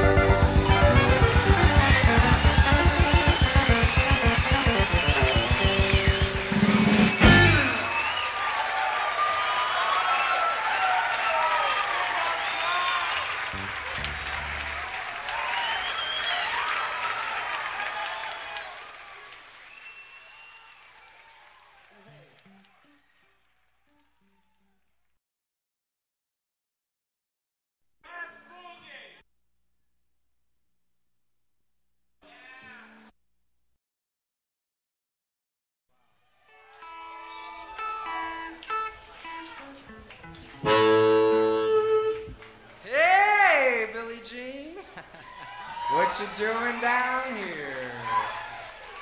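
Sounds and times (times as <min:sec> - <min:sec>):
live blues band playing: 0:00.0 - 0:08.1, 0:13.6 - 0:14.9, 0:37.7 - 0:42.6
audience applauding and cheering: 0:00.0 - 0:24.6, 0:36.5 - 0:49.0.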